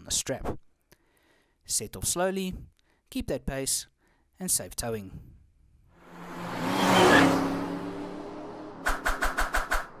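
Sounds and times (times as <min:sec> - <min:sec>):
quick drum-like hits: 0:08.8 - 0:09.9.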